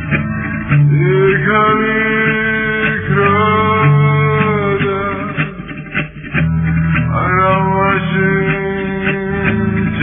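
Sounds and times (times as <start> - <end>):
low musical accompaniment: 0.0 - 10.0.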